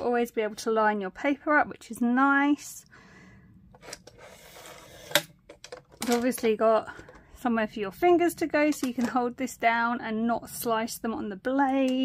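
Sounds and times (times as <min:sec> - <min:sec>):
plastic rubbing or sliding: 0:03.7 - 0:06.2
plastic clicks: 0:05.0 - 0:07.4, 0:08.6 - 0:09.2.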